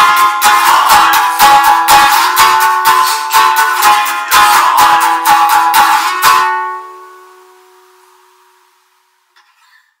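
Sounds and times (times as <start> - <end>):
acoustic strummed chord ringing: 0.0 - 9.6.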